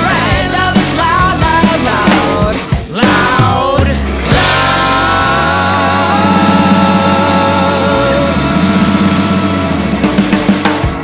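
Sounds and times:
distorted electric guitar chord: 4.2 - 11.0.

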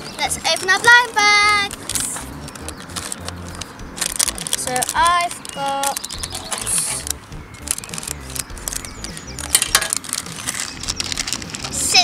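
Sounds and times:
plastic packet crinkling and tearing: 1.7 - 11.8.

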